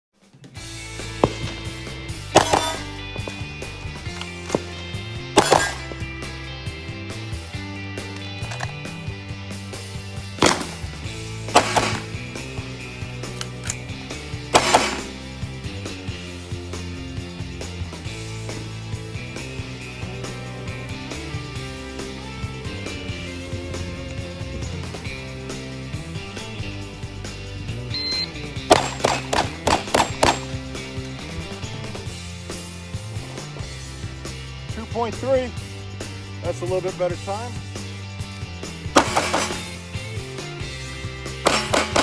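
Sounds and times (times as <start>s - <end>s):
background music: 0.2s - 42.0s
gunshots: 2.4s - 2.9s, 5.4s - 5.9s, 10.4s - 10.9s, 11.5s - 12.2s, 14.5s - 15.2s, 28.7s - 30.6s, 39.0s - 39.8s, 41.4s - 42.0s.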